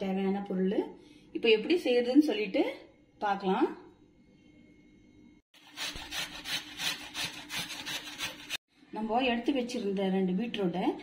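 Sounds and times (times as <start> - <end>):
beetroot grated on hand grater: 5.6 - 8.6.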